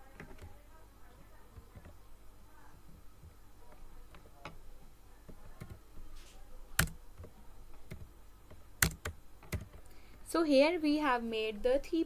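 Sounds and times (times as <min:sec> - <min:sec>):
computer keyboard clicks: 0:06.8 - 0:09.9.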